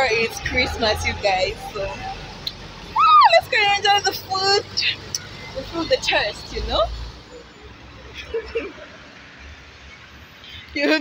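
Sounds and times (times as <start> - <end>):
voices: 0.0 - 8.9, 10.4 - 11.0
low rumble of road vehicles: 0.0 - 11.0.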